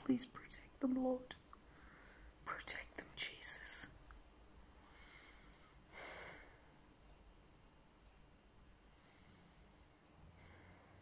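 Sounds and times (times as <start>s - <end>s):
woman whispering: 0.0s - 1.4s, 2.4s - 4.0s.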